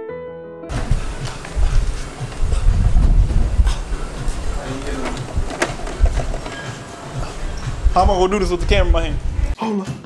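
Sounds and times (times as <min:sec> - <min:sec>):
wind buffeting microphone: 0:00.7 - 0:09.6.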